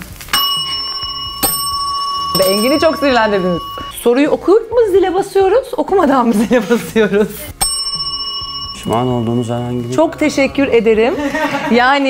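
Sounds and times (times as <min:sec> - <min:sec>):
desk service bell ding: 0:00.4 - 0:03.9, 0:07.6 - 0:10.0.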